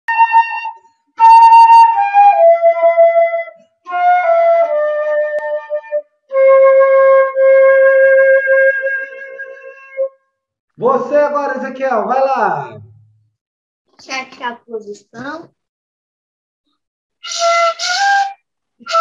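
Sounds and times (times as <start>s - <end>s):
flute playing descending notes: 0.1s - 10.1s, 17.2s - 19.0s.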